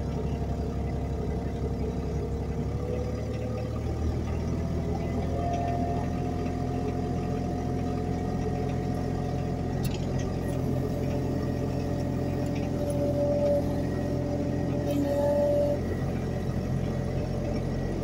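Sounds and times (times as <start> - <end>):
diesel engine running: 0.0 - 18.0
hydraulic whine: 9.8 - 18.0.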